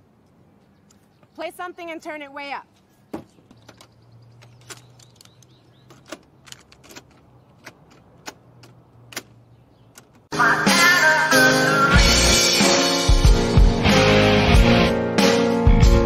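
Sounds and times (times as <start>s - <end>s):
loud guitar music: 10.3s - 16.0s.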